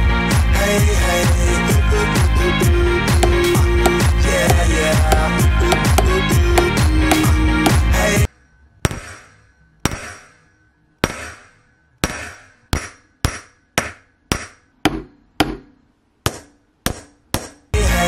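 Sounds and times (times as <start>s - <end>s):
background music: 0.0s - 8.5s, 17.8s - 18.0s
hammer striking copper sheet: 3.2s - 17.8s.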